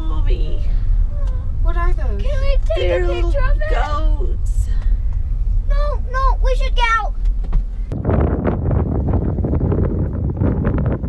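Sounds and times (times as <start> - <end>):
car interior rumble: 0.0 - 11.0
wind buffeting microphone: 0.0 - 11.0.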